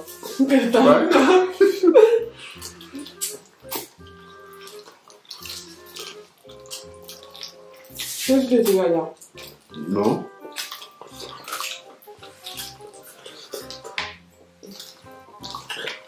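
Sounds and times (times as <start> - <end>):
soft background music: 0.0 - 16.0
wet chewing and slurping: 2.2 - 16.0.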